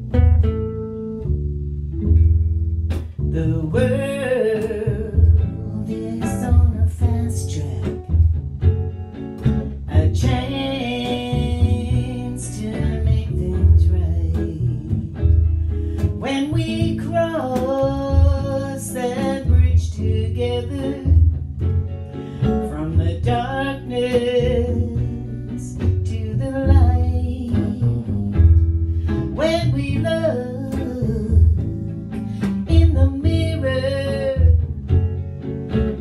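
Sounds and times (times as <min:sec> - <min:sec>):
guitar sliding notes: 0:00.0 - 0:36.0
plucked double bass: 0:00.0 - 0:36.0.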